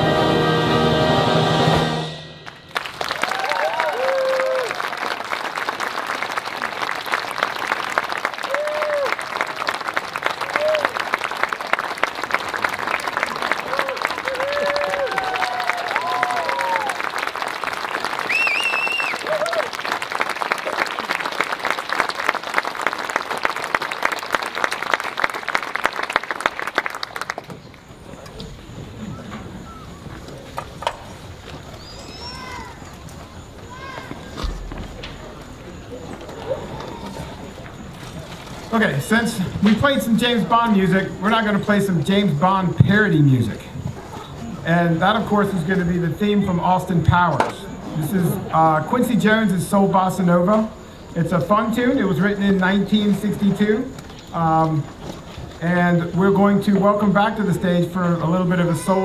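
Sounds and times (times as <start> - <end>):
audience applauding: 2.4 - 28.3
whoops and cheers: 3.1 - 5.0, 8.4 - 9.2, 10.4 - 11.0, 13.6 - 17.1, 18.3 - 19.8.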